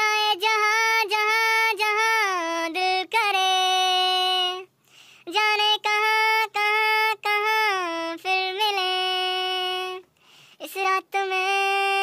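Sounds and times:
high-pitched voice singing: 10.6s - 12.0s.

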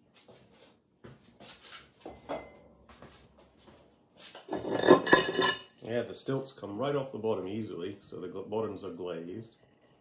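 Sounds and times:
ceramic clinking clatter: 2.1s - 2.6s, 4.4s - 5.8s
ceramic mugs scraping and knocking: 2.1s - 2.6s, 4.2s - 5.8s.

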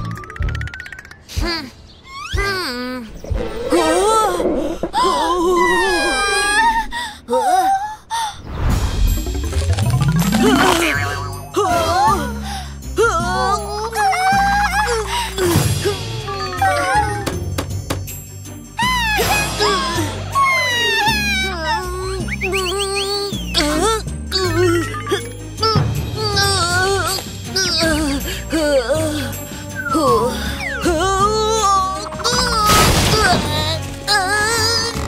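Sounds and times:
cartoon background music: 0.0s - 4.4s, 8.8s - 35.0s
low rumbling sound effect: 8.4s - 11.0s.

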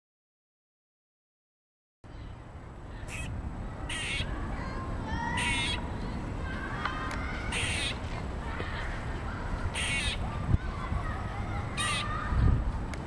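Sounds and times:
squirrel rasping alarm calls: 3.0s - 3.3s, 3.9s - 4.3s, 5.4s - 5.8s, 7.5s - 8.0s, 9.7s - 10.2s, 11.8s - 12.2s.

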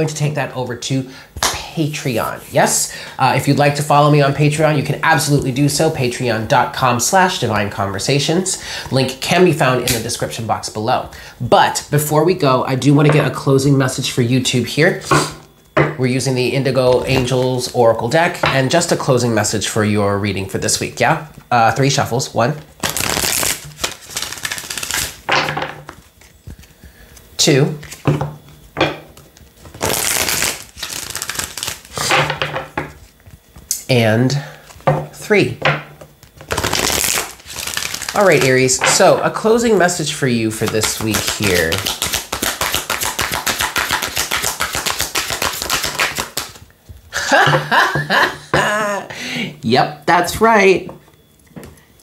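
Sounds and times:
cards being riffle-shuffled: 22.8s - 25.2s, 29.4s - 32.2s, 36.2s - 39.0s, 40.5s - 46.6s.

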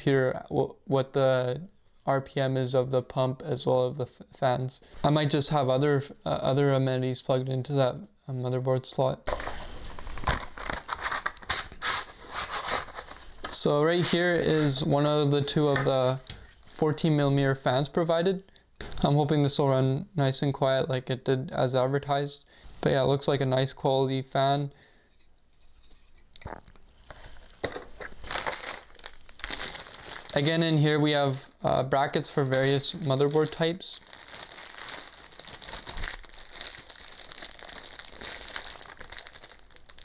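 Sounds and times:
packaging crinkling and rustling: 9.3s - 14.8s, 27.0s - 40.0s.

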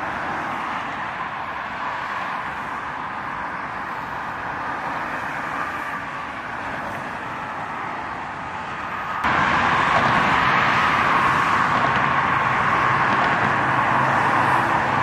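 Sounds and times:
city road traffic hiss: 0.0s - 15.0s.

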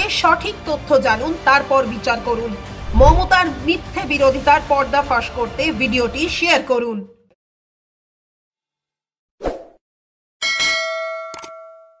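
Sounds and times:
bright metallic ding: 10.4s - 12.0s.

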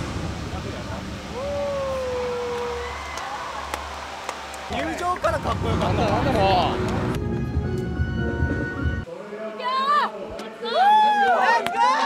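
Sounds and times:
steady low rumble: 0.0s - 2.7s, 5.2s - 9.0s
person's long falling call: 1.3s - 3.7s.

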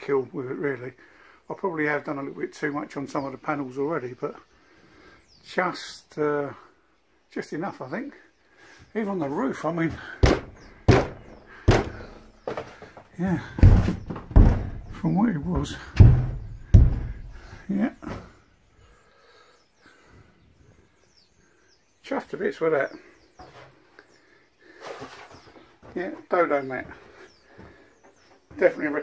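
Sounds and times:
faint bird chirps: 2.3s - 29.0s
hand knocking on van panels: 10.2s - 12.2s, 13.6s - 15.0s, 15.6s - 17.4s
man breathing and sniffing: 16.4s - 21.6s.

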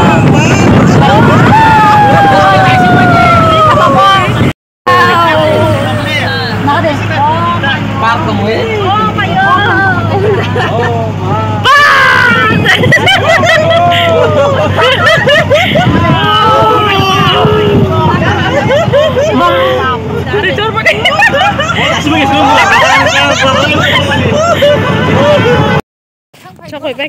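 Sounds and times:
people chattering and calling out: 0.0s - 25.8s
road noise: 0.0s - 25.8s
vehicle engine hum: 0.0s - 25.8s.

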